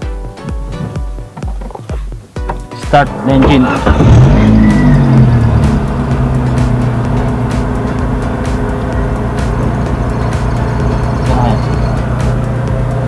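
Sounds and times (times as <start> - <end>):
small car engine idling: 2.5 - 13.0.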